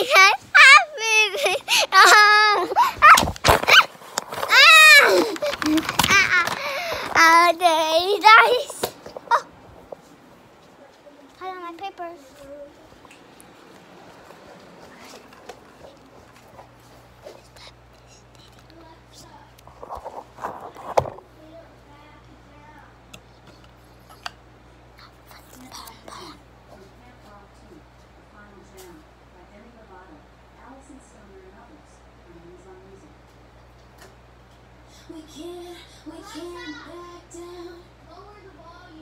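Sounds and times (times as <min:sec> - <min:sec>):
phone handling rustling: 0:03.0 - 0:07.3
child singing: 0:35.1 - 0:39.0.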